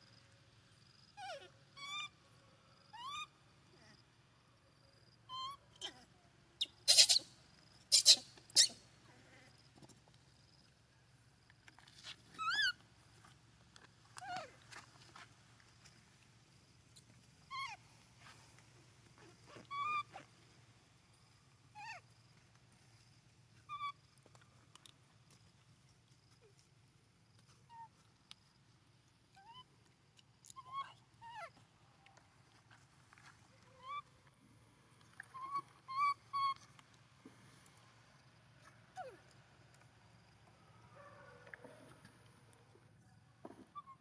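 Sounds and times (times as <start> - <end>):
baby monkey squeaking: 1.2 - 2.1, 3.0 - 3.3, 5.3 - 6.0, 6.6 - 8.8, 12.4 - 12.8, 17.5 - 17.8, 19.7 - 20.2, 23.7 - 24.0, 30.5 - 31.5, 33.8 - 34.0, 35.3 - 36.7.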